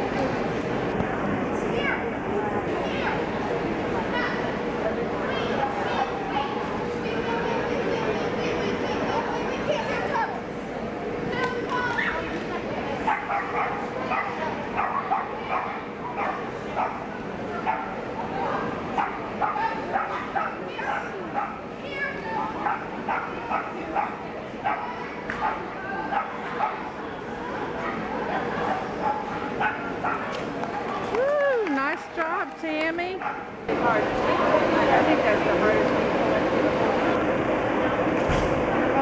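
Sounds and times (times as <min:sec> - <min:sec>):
small dog barking: 0:33.2 - 0:33.4.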